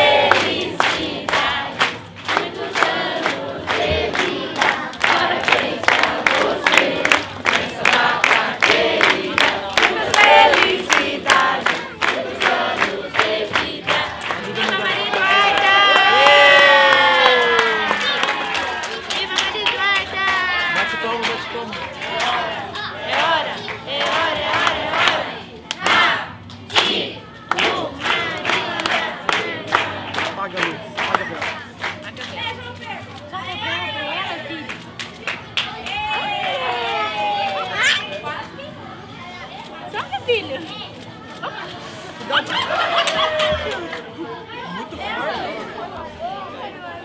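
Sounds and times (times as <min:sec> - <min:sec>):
crowd singing and shouting: 0:00.0 - 0:32.6, 0:39.6 - 0:47.0
hand claps: 0:00.2 - 0:32.4.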